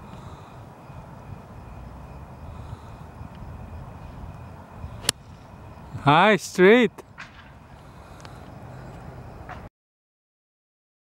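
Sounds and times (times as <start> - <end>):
outdoor background rumble: 0.0 - 9.7
golf club striking ball: 5.0 - 5.4, 7.2 - 7.6.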